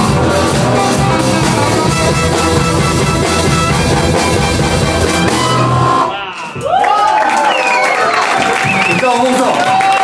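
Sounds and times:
live jazz band playing: 0.0s - 6.2s
audience cheering and whistling: 5.4s - 10.0s.

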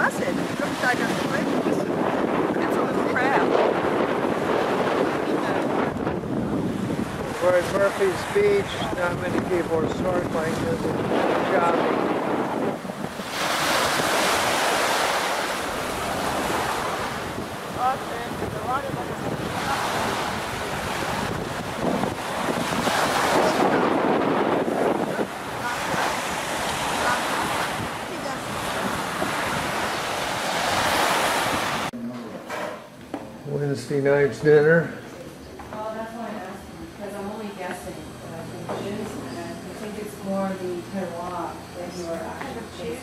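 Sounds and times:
surf washing onto beach: 0.0s - 31.9s
wind on microphone: 0.0s - 32.0s.

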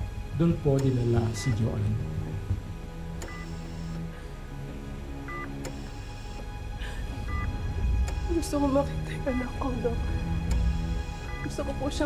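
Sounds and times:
low dramatic music: 0.0s - 12.0s
patient monitor two-tone beep: 1.2s - 1.7s, 3.3s - 4.0s, 5.3s - 5.6s, 7.2s - 7.5s, 9.3s - 9.6s, 10.6s - 11.6s.

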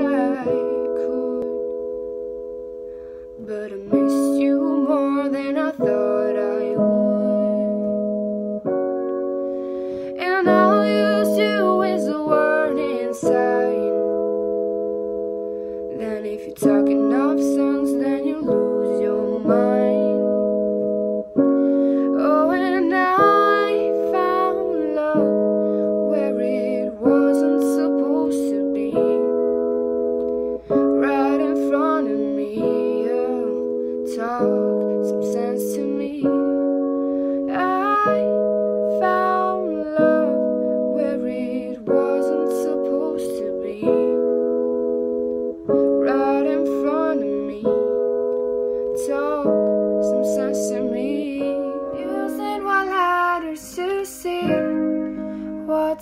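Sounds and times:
sustained keyboard chords: 0.0s - 56.0s
woman singing slow song: 0.0s - 56.0s.

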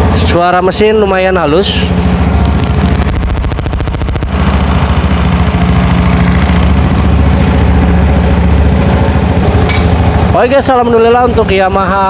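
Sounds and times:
scooter engine idling: 1.0s - 12.0s.

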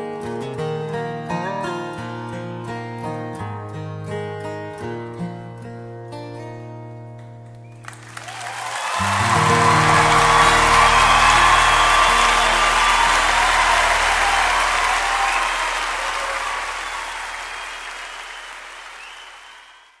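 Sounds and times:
audience applause: 7.8s - 20.0s
guitar chord ringing: 9.0s - 17.2s.

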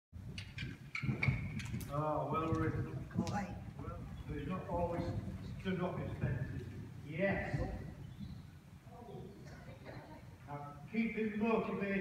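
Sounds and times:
horse hoofbeats on sand: 0.2s - 8.5s.

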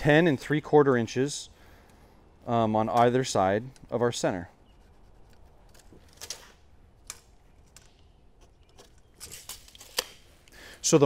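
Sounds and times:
pencil scratching on wood: 4.0s - 5.9s.

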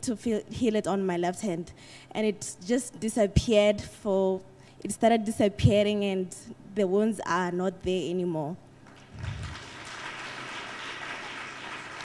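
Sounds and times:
audience applauding: 8.9s - 12.0s.

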